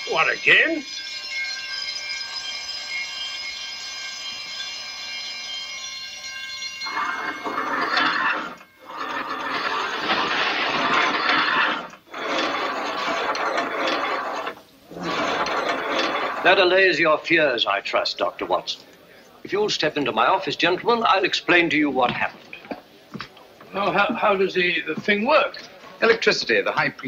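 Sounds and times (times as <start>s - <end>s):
alarm gongs ringing: 0.0s - 11.2s.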